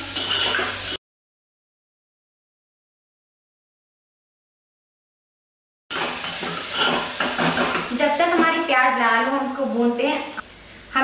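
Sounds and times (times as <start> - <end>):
onions sizzling in a pot: 0.0 - 1.0, 5.9 - 11.0
spoon scraping a pot: 0.0 - 1.0, 5.9 - 7.9.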